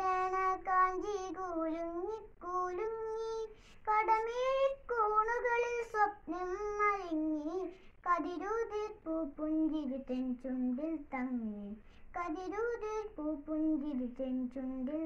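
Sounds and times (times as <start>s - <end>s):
boy singing unaccompanied: 0.0s - 15.0s.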